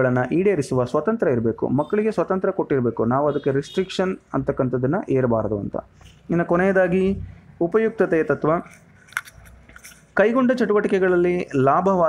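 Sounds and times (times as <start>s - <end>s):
man speaking: 0.0s - 8.8s, 10.2s - 12.0s.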